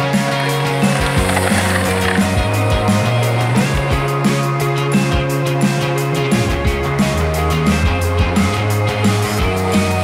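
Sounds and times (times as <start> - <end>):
music with steady beat and bass: 0.0 - 10.0
rolling rattling noise: 0.3 - 3.8.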